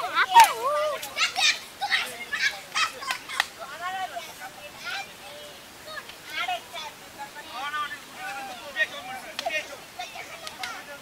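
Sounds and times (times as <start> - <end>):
people shouting: 0.0 - 1.6.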